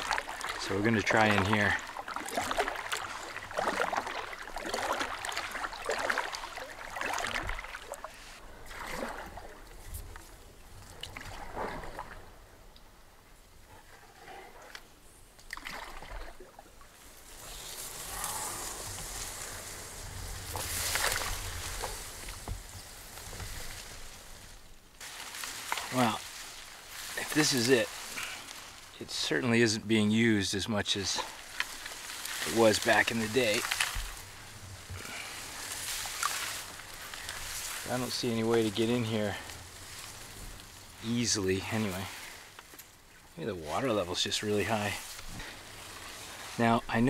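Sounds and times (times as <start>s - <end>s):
hull brushing through reeds: 0.0s - 10.3s, 16.9s - 47.0s
paddle splashes: 0.0s - 12.6s, 15.4s - 29.4s, 30.4s - 47.0s
water dripping off paddle: 0.0s - 12.9s, 31.1s - 38.0s.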